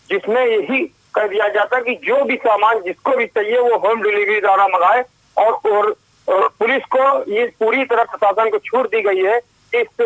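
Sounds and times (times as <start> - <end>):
person talking over telephone: 0.1 - 10.0.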